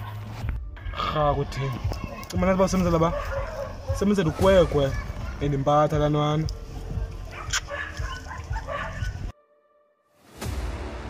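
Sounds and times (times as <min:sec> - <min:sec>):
dog barking: 0:02.0 - 0:06.1, 0:06.7 - 0:09.3.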